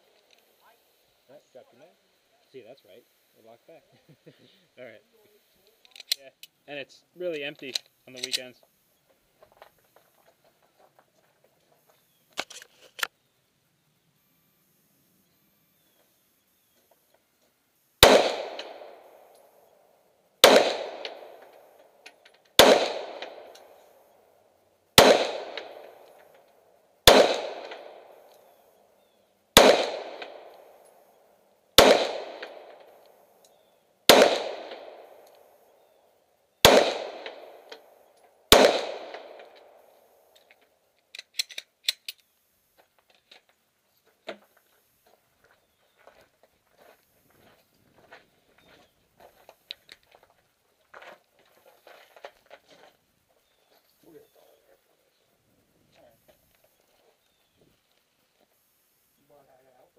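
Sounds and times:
pistol shots with echo: 0:18.0 - 0:19.3, 0:20.4 - 0:21.6, 0:22.6 - 0:23.8, 0:25.0 - 0:26.1, 0:27.0 - 0:28.3, 0:29.6 - 0:30.8, 0:31.8 - 0:33.0, 0:34.1 - 0:35.2, 0:36.6 - 0:37.8, 0:38.5 - 0:39.8.

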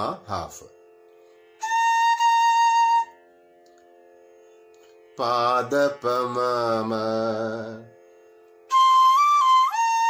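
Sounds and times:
man singing sliding pitch: 0:00.0 - 0:00.8, 0:05.2 - 0:08.0.

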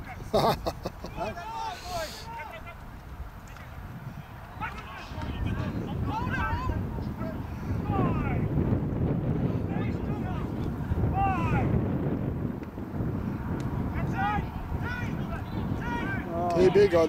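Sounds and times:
wind buffeting microphone: 0:00.0 - 0:17.0
distant shouts: 0:01.0 - 0:08.6, 0:09.6 - 0:11.8, 0:13.3 - 0:17.0.

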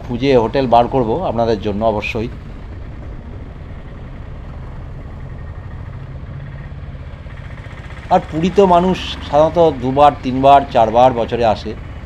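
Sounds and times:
auto-rickshaw engine droning: 0:00.0 - 0:12.0.

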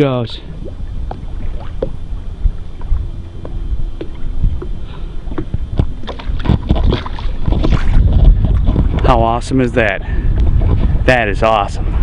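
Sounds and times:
water slapping boat hull: 0:00.0 - 0:12.0
wind buffeting microphone: 0:00.0 - 0:12.0
knocks and splashes: 0:05.3 - 0:09.1.

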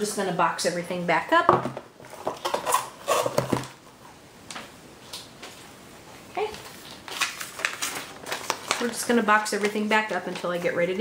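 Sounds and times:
paper rustling: 0:06.5 - 0:11.0.

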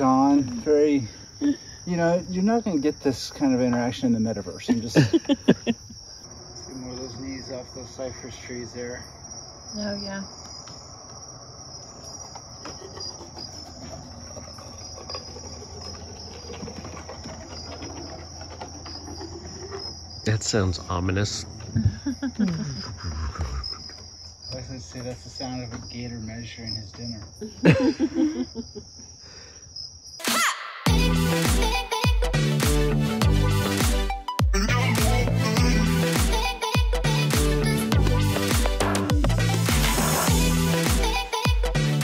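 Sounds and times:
crickets chirring: 0:00.0 - 0:42.0
night insects chorus: 0:00.0 - 0:42.0
music: 0:30.2 - 0:42.0.

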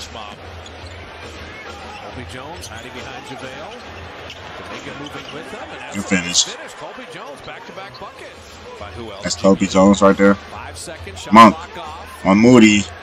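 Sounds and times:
arena crowd noise: 0:00.0 - 0:13.0
faint commentary: 0:00.0 - 0:13.0.

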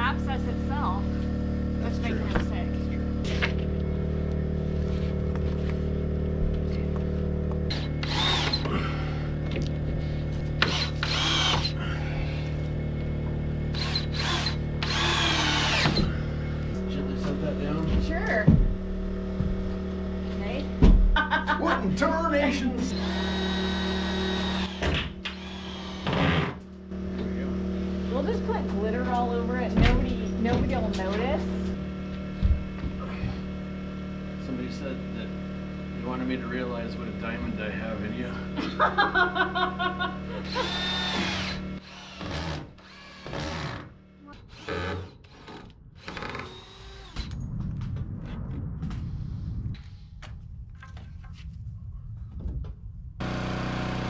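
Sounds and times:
cordless drill driving screws: 0:07.7 - 0:08.7, 0:10.6 - 0:11.8, 0:13.7 - 0:16.1, 0:22.9 - 0:26.6, 0:40.4 - 0:47.3.

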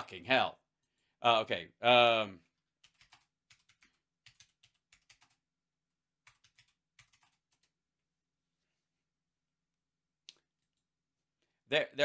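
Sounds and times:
typing on computer keyboard: 0:02.8 - 0:05.4, 0:06.2 - 0:07.8.

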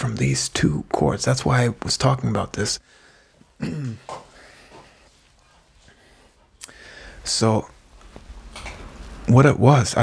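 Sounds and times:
soft small sounds: 0:03.3 - 0:09.4
man's throat noise: 0:03.6 - 0:04.2.

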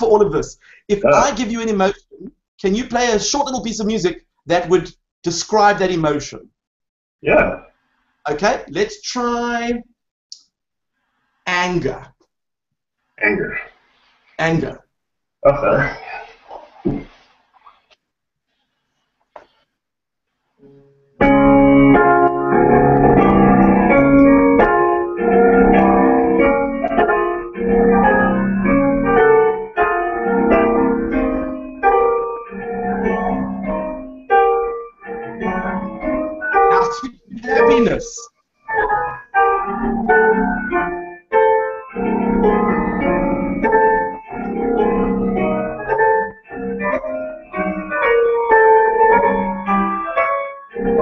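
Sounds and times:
digital piano heavy chords: 0:00.0 - 0:03.0, 0:21.2 - 0:51.0.

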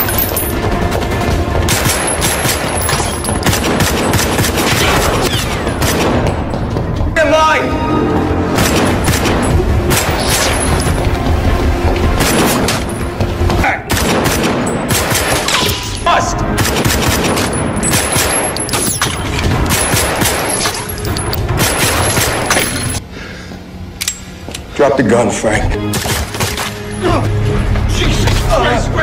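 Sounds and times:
rapid overlapping gunfire: 0:00.9 - 0:06.3, 0:13.9 - 0:15.6, 0:16.5 - 0:20.6, 0:21.5 - 0:22.5.

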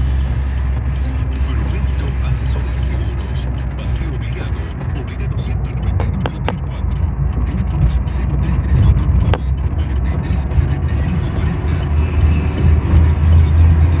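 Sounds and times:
road and engine rumble in car: 0:00.0 - 0:14.0.

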